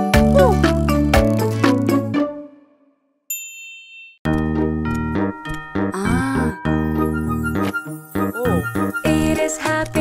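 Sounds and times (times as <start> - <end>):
children's song: 8.4 - 10.0.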